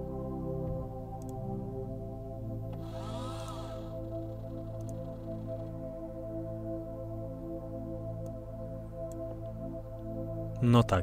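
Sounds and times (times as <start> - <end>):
soft ambient music: 0.0 - 11.0
motor whine: 2.8 - 4.4.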